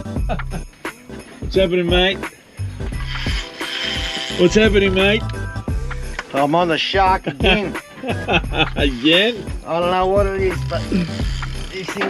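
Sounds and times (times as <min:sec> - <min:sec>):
background music: 0:00.0 - 0:12.0
fishing reel ratcheting: 0:02.9 - 0:06.2, 0:08.6 - 0:12.0.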